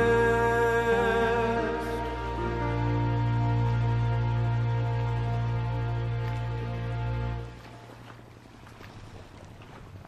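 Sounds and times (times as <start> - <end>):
water washing: 0.0 - 10.0
motorboat engine hum: 1.7 - 10.0.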